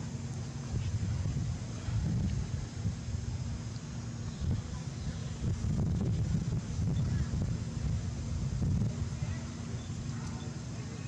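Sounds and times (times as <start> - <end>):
wind buffeting microphone: 0.6 - 10.6.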